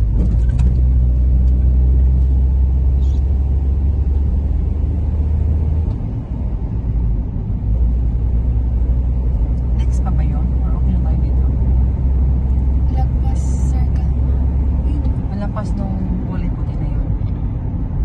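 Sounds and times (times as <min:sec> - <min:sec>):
car cabin road noise: 0:00.0 - 0:18.0.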